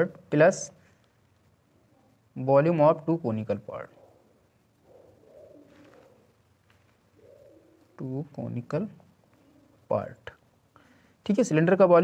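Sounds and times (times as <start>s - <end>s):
pigeon cooing: 3.9s - 6.4s, 7.1s - 8.0s, 9.4s - 9.9s.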